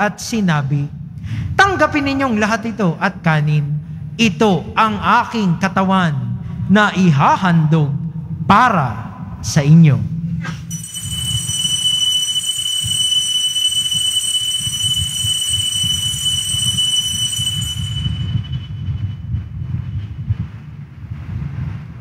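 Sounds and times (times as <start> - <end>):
low rumble: 0.6 - 22.0
metal bell ringing: 10.7 - 19.2.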